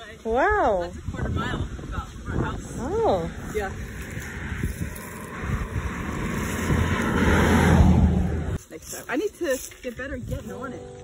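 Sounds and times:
pickup truck approaching: 3.0s - 8.6s.

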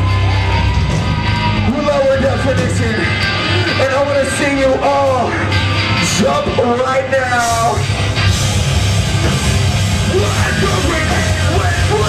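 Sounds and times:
distorted electric guitar: 0.0s - 12.0s
drums: 0.0s - 12.0s.

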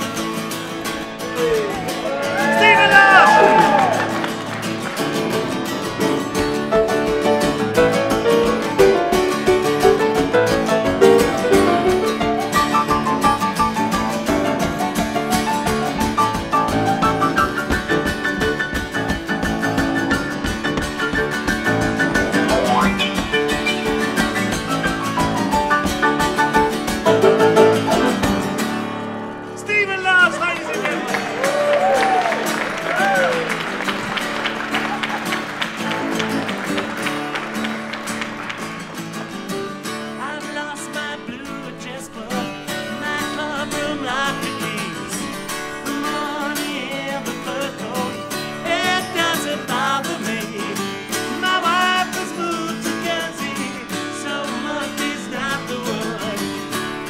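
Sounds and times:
acoustic guitars strumming: 0.0s - 57.0s
grand piano: 1.0s - 43.0s
man singing: 2.4s - 4.0s, 40.1s - 57.0s.

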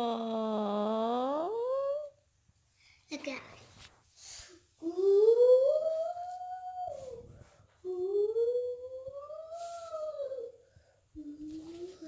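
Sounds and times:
long howls rising and falling: 4.8s - 10.6s.

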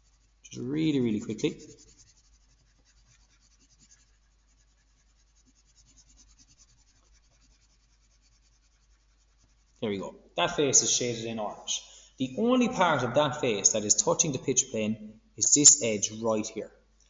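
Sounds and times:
pencil scratching on paper: 0.0s - 9.8s.

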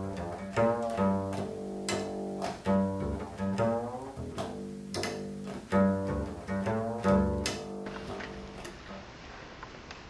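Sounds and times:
double bass note: 0.0s - 9.1s.

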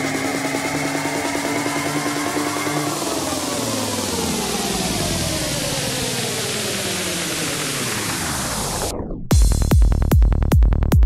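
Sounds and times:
synth tones sliding downward: 0.0s - 9.3s.

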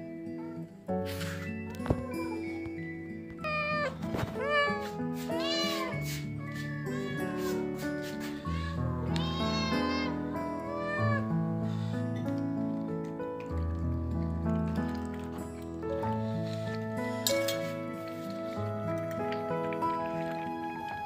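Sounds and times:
background music with held notes: 0.0s - 21.0s
kittens meowing: 3.5s - 11.3s.

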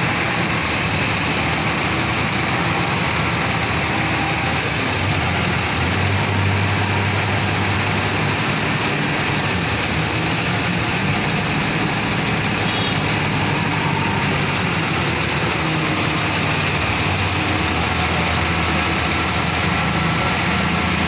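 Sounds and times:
diesel forklift engine running: 0.0s - 21.0s.

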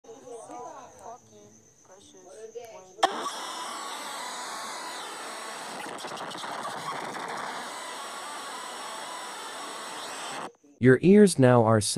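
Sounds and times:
harsh distorted noise: 3.0s - 10.5s.

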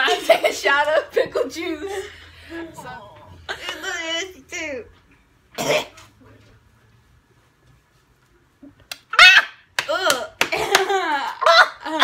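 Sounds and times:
woman coughing: 5.6s - 6.0s.

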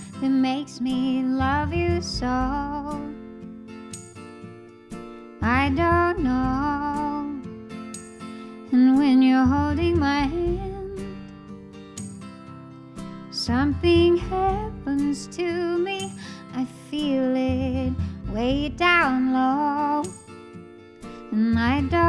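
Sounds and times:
woman singing a ballad: 0.0s - 3.3s, 5.4s - 7.6s, 8.6s - 11.3s, 13.3s - 20.4s, 21.1s - 22.0s
soft instrumental accompaniment: 0.0s - 22.0s.

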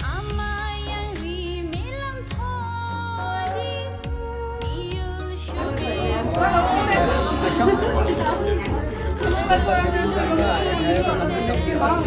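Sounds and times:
background music held notes: 0.8s - 12.0s
crowd chatter: 5.4s - 12.0s.

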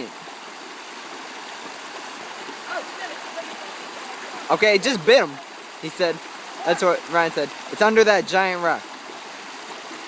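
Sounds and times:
stream water rushing: 0.0s - 10.0s.

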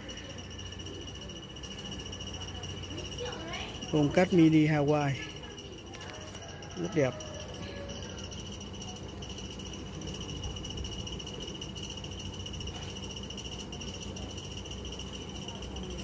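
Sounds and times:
cricket trilling: 0.0s - 16.0s.

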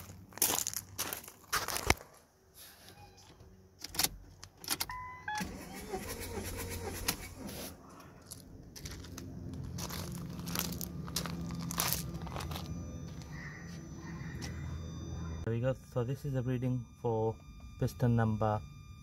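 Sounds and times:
diesel engine cranking: 3.9s - 19.0s
short dashboard beeps: 4.9s - 7.1s, 12.0s - 19.0s.

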